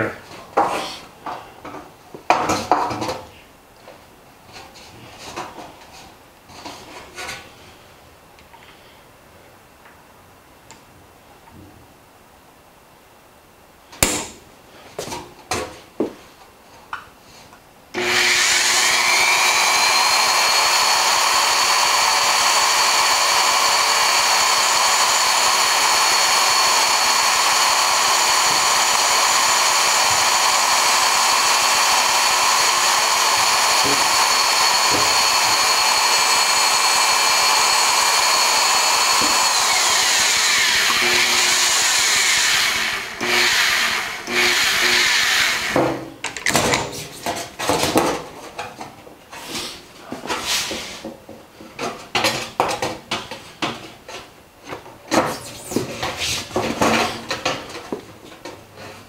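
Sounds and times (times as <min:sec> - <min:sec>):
electric motor whining: 0:18.0 - 0:45.8.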